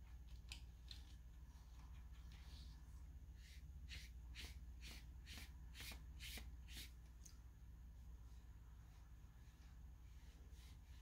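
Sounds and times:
brush swishing on paper: 0:01.4 - 0:07.0, 0:08.0 - 0:11.0.

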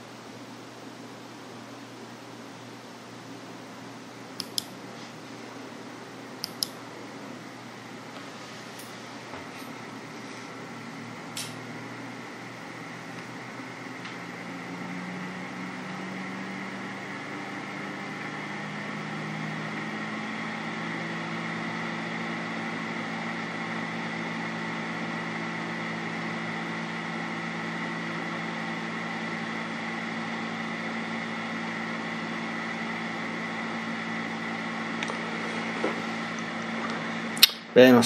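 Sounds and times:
machine hum with low tones: 0:00.0 - 0:38.0.

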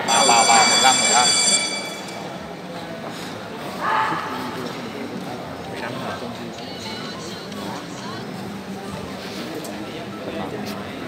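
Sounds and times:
high electronic buzzer: 0:00.0 - 0:02.4
voices in a hall: 0:00.0 - 0:11.0.

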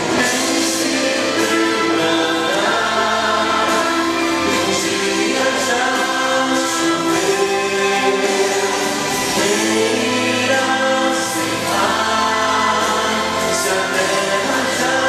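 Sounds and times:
man singing into a microphone: 0:00.0 - 0:15.0
musical accompaniment: 0:00.0 - 0:15.0.

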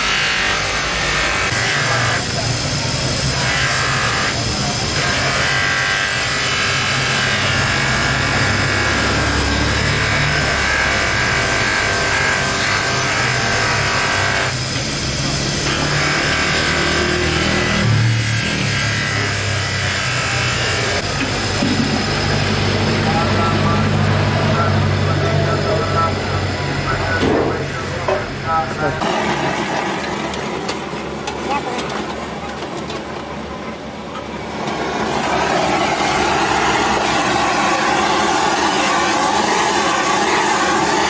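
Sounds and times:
buffing motor running: 0:00.0 - 0:28.2, 0:34.5 - 0:41.0.

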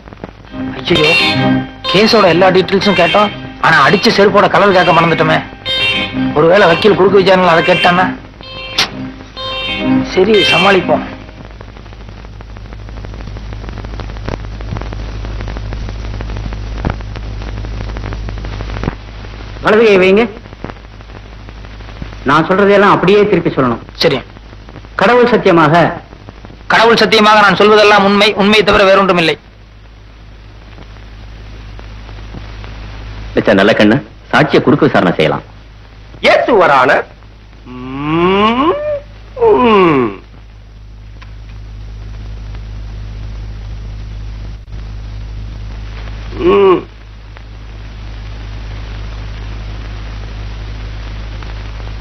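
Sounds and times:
low hum: 0:00.0 - 0:19.6
crackles and clicks: 0:00.0 - 0:52.0
steady hiss: 0:00.0 - 0:52.0.

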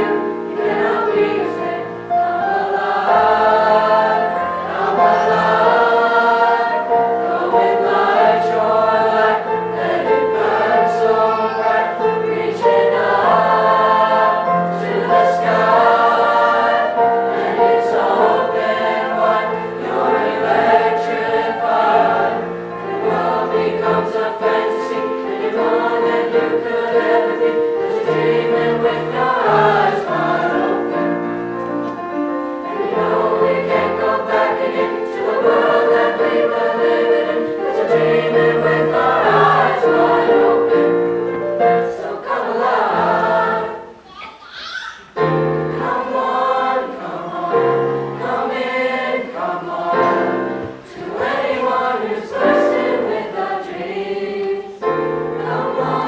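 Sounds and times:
children's choir singing: 0:00.0 - 0:56.0.

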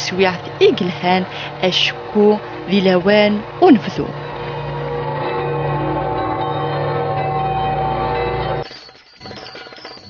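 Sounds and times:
church bells ringing: 0:01.8 - 0:10.0.

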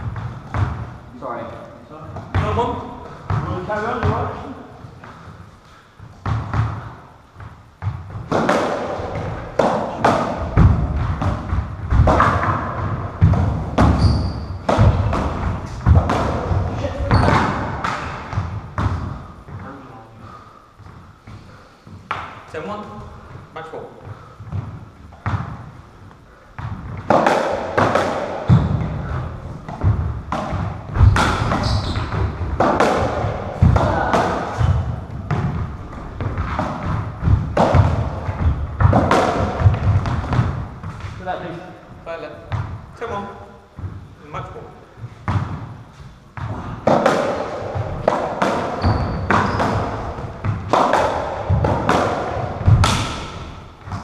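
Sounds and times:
ball thuds echoing in squash court: 0:00.0 - 0:01.2, 0:02.1 - 0:22.5, 0:24.0 - 0:41.6, 0:42.4 - 0:44.2, 0:44.8 - 0:54.0
shoe squeak: 0:13.9 - 0:14.7, 0:17.0 - 0:17.6, 0:31.0 - 0:32.2, 0:48.8 - 0:49.9.

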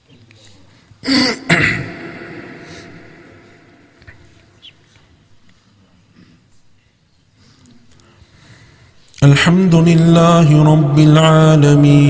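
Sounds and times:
person coughing: 0:01.0 - 0:03.3.

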